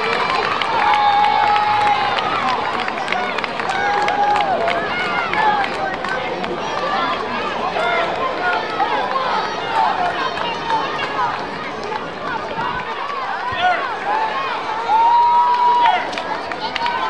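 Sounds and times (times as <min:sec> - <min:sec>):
crowd talking and calling out: 0:00.0 - 0:17.0.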